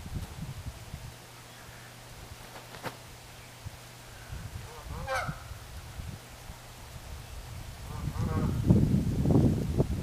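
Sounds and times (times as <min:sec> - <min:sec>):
waterfowl call: 0:04.7 - 0:05.4.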